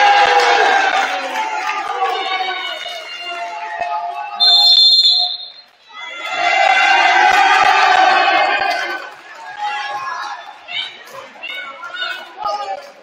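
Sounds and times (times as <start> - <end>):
referee's whistle blast: 4.4 - 5.7.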